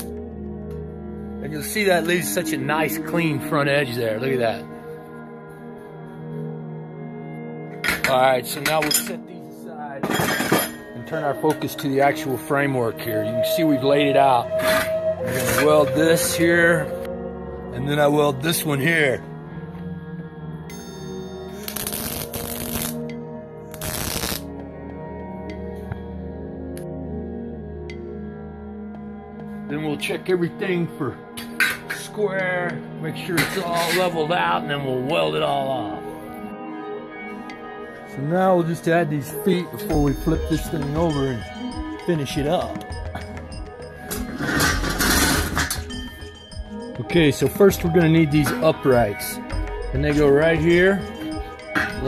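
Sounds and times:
background music: 0.0s - 52.0s
welding arc crackle: 21.6s - 23.0s, 23.7s - 24.5s.

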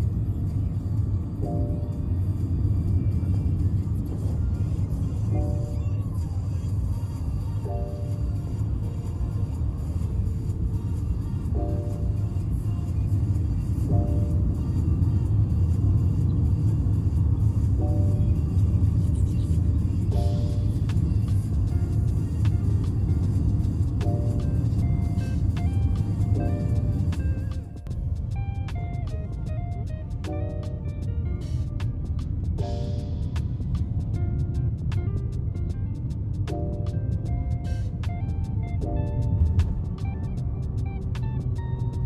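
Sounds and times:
car road and engine rumble: 0.0s - 42.0s
light background music: 0.0s - 42.0s.

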